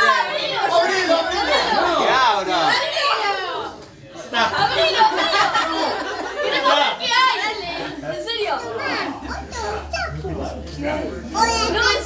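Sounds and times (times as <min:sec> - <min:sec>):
children talking and calling out: 0:00.0 - 0:03.8, 0:04.4 - 0:12.0.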